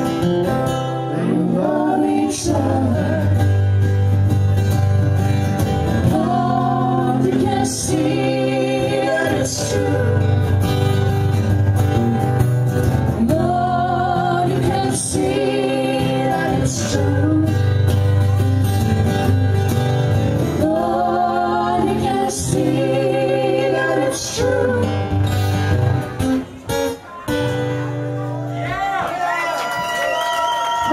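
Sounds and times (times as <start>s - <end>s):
acoustic guitars strumming: 0.0s - 28.4s
harmony singing: 1.1s - 3.5s, 6.0s - 10.6s, 13.2s - 17.7s, 20.5s - 25.2s
woman singing lead vocal: 1.1s - 3.7s, 6.0s - 10.6s, 13.2s - 17.9s, 20.6s - 25.2s.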